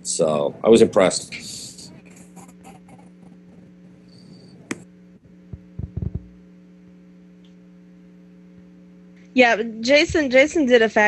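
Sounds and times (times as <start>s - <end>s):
electrical hum: 0.0s - 11.0s
dull low thumps: 5.4s - 6.4s.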